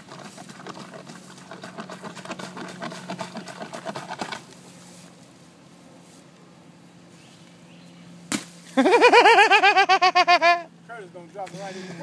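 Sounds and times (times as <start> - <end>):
plunger pumping in pipe: 0.0 - 4.4.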